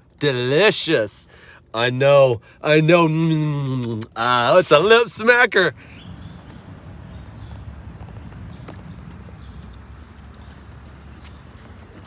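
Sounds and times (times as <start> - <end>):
footsteps on asphalt: 5.9 - 12.0.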